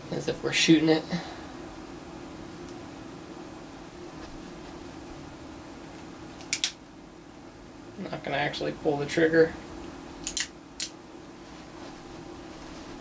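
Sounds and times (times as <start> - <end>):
steady low hum: 0.0 - 13.0
revolver hammer cocking clicks: 6.4 - 6.8, 10.2 - 10.9.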